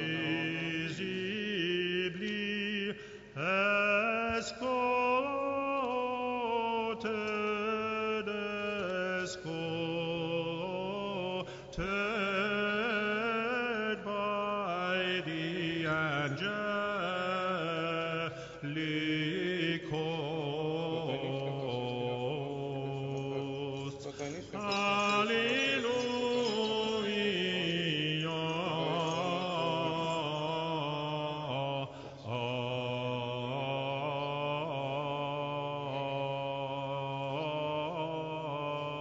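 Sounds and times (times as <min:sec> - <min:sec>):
chant melody over drone: 0:00.0 - 0:04.0, 0:04.6 - 0:39.0.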